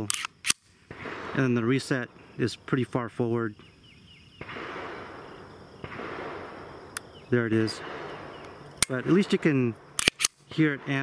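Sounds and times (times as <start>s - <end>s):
steady hiss: 0.0s - 11.0s
pistol trigger reset click: 10.0s - 10.4s.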